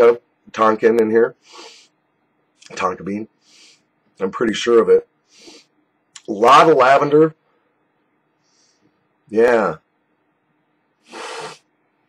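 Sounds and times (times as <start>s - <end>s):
man snorting through the nose: 11.0s - 11.7s.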